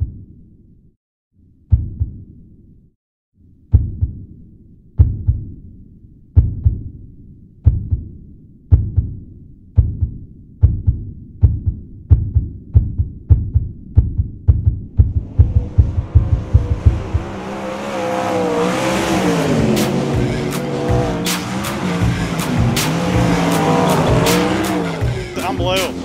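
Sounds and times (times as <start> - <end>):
heartbeat-like thudding: 1.7 - 2.2, 3.7 - 4.3, 5.0 - 5.6, 6.4 - 7.0, 7.6 - 9.2, 9.8 - 25.8
race car engine at speed: 15.0 - 26.0.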